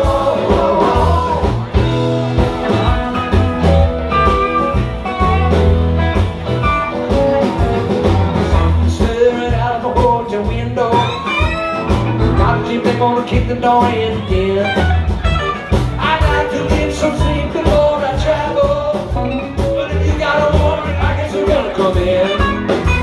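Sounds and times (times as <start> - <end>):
drums: 0.0 - 23.0
electric bass: 0.0 - 23.0
electric guitar lead: 0.0 - 23.0
keyboards: 0.0 - 23.0.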